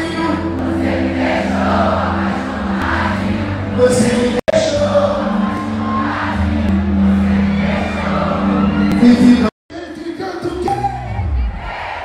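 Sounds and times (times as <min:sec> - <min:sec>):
loud crowd noise: 0:00.0 - 0:12.0.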